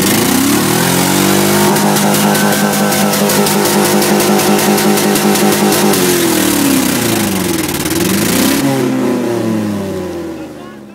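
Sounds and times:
loud rushing noise: 0.0 - 8.6
car engine revving: 0.0 - 10.7.

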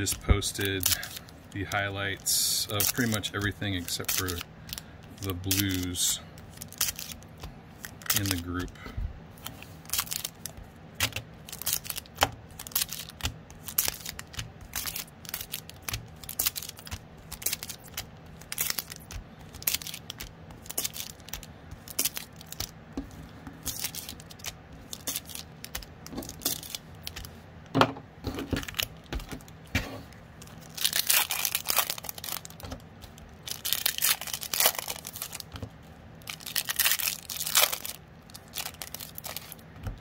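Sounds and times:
knife slitting foil packs: 0.0 - 7.2, 7.8 - 8.7, 30.6 - 32.6, 33.5 - 35.4, 36.2 - 39.6
foil wrappers crinkling: 0.0 - 8.8, 9.4 - 27.3, 28.5 - 29.6, 30.2 - 40.0.

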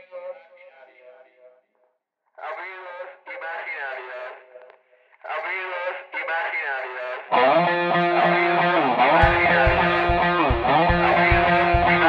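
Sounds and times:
man speaking through a megaphone: 0.0 - 1.4, 2.4 - 8.6, 9.2 - 12.0.

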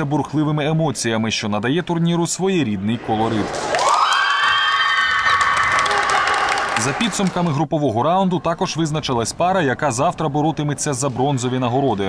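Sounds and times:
girls screaming and cheering: 3.6 - 7.0
scattered clapping: 3.6 - 7.6.

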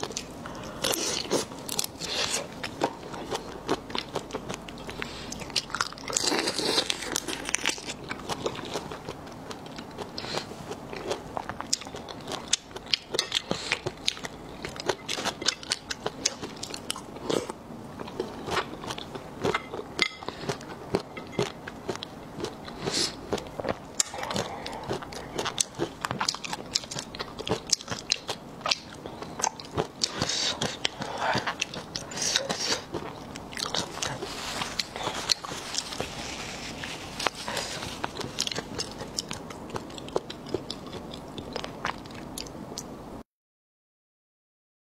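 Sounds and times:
chewing shrimp wet crunches: 0.0 - 42.5.

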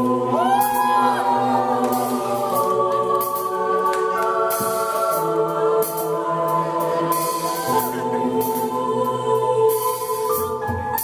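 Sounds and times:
sustained choir-like chords: 0.0 - 10.4.

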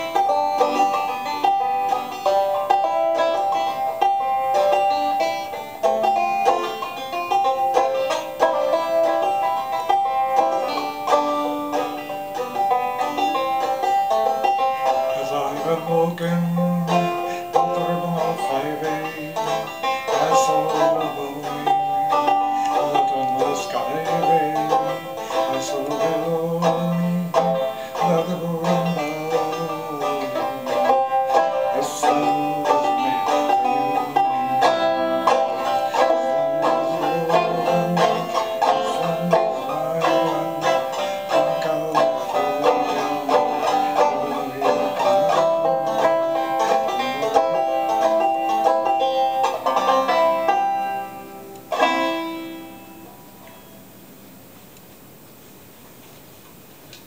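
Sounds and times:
banjo picking: 0.0 - 53.9.

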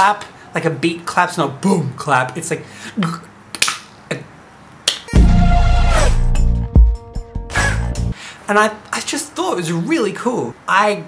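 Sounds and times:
electronic pop music: 5.1 - 8.2
heavy bass beat: 5.2 - 8.1.

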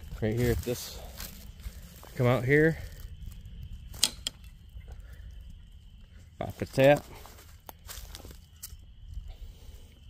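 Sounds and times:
sharp clicks: 3.9 - 4.6.

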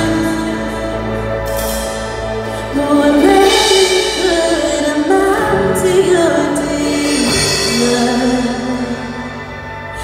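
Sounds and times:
woman singing: 0.0 - 1.4, 2.4 - 10.0
band accompaniment: 0.0 - 10.0.

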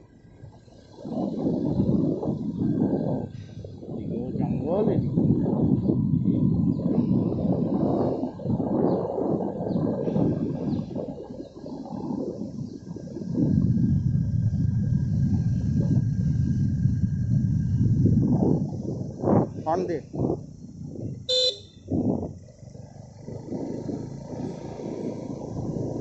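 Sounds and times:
vehicle rumble: 0.0 - 26.0
wind buffeting microphone: 0.0 - 26.0.

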